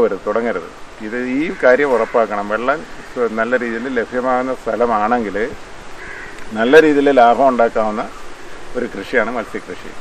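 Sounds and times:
man speaking: 0:00.0 - 0:05.6, 0:06.5 - 0:10.0.

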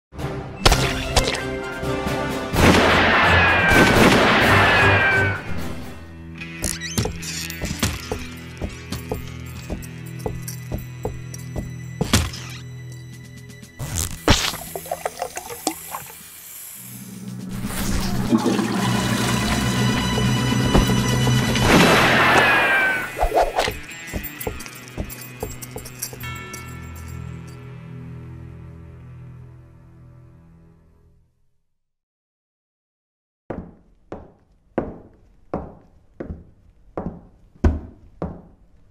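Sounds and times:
loud blast-like noise burst: 0:02.6 - 0:05.2
footsteps on wooden floor: 0:06.6 - 0:12.5, 0:20.0 - 0:21.7, 0:23.6 - 0:26.3, 0:33.5 - 0:38.7
metallic jingle: 0:07.2 - 0:11.8, 0:23.7 - 0:27.7.

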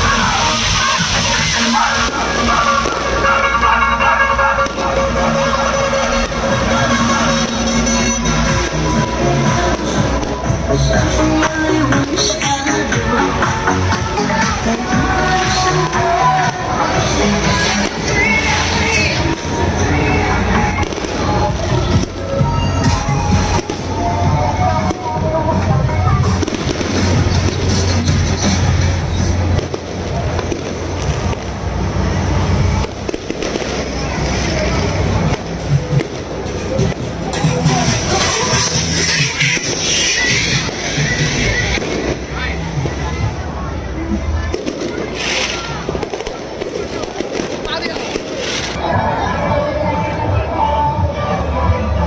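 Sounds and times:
firecrackers crackling: 0:00.0 - 0:48.8
crowd voices: 0:00.0 - 0:52.0
music over loudspeakers: 0:00.0 - 0:52.0.

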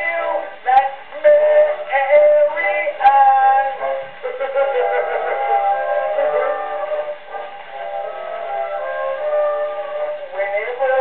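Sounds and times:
man singing with orchestra: 0:00.0 - 0:11.0.

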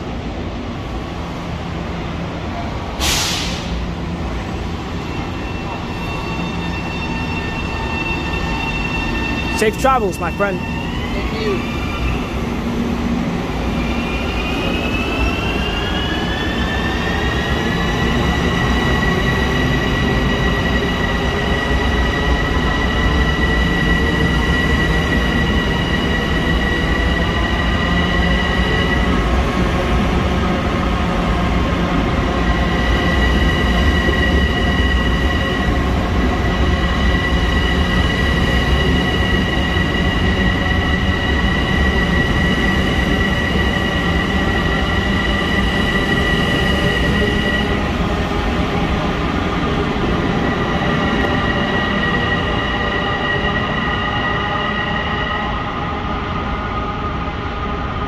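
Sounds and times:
train high whine: 0:00.0 - 0:58.0.

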